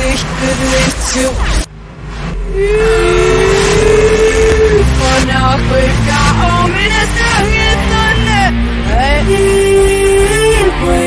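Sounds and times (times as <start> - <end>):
reversed hip-hop music: 0.0 - 11.0.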